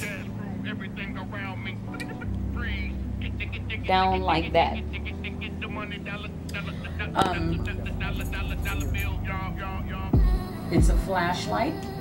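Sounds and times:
low hum: 0.0 - 12.0
quiet talking: 0.0 - 12.0.

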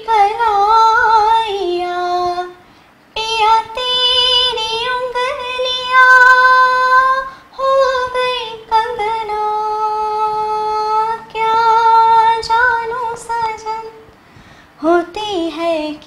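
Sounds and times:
woman singing unaccompanied: 0.0 - 16.0.

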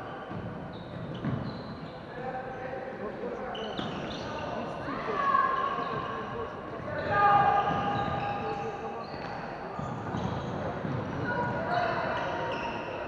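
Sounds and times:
shoes squeaking on floor: 0.0 - 2.6, 3.4 - 4.7, 5.7 - 13.0.

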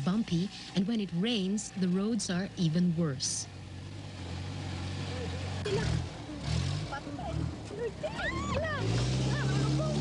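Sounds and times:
people talking: 0.0 - 3.5, 6.9 - 10.0
truck engine humming: 0.0 - 10.0.

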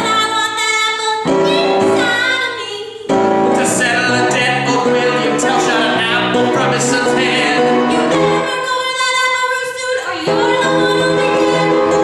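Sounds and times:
man and woman singing: 1.2 - 12.0.

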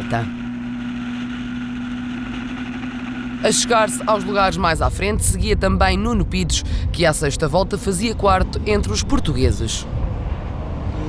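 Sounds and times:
race car engine at high revs: 0.0 - 4.6, 8.0 - 11.0.

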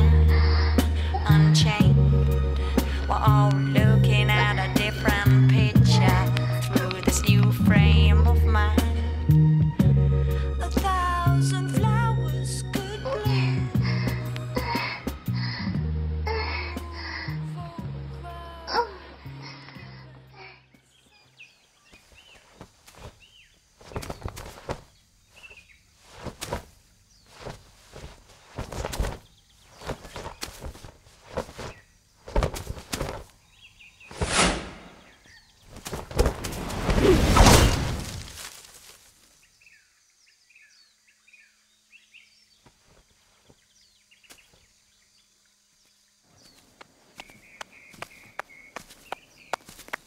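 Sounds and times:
soft background music: 0.0 - 20.9
bird chirping: 19.5 - 36.7, 39.4 - 50.0
soft steps on grass: 20.8 - 39.5, 42.5 - 44.9, 45.8 - 50.0.

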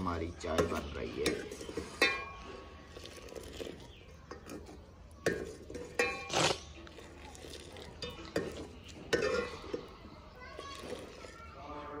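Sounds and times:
faint children's voices: 0.0 - 12.0
ladle clinking in metal pot: 0.5 - 3.7, 4.3 - 6.3, 8.0 - 9.9.

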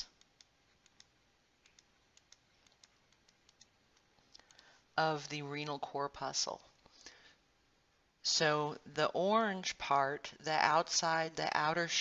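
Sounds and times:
stylus ticking on drawing tablet: 0.0 - 4.7.

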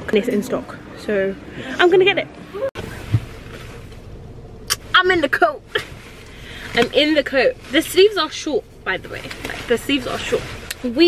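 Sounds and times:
car interior rumble: 0.0 - 11.0
soft thump: 2.8 - 3.4.

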